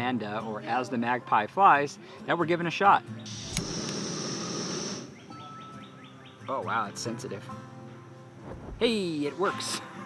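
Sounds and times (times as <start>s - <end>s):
gas stove burner hissing: 3.3s - 5.1s.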